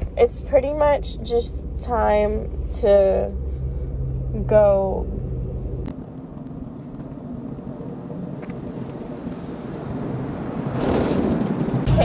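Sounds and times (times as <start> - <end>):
rushing noise inside car: 0.0 - 12.0.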